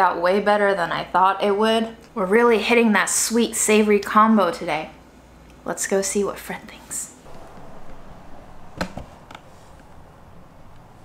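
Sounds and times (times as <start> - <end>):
short sharp knock: 8.6 - 9.5.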